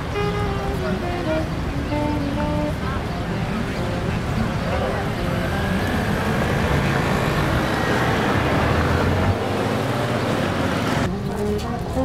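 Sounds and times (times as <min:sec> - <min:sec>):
passing road traffic: 0:00.0 - 0:12.0.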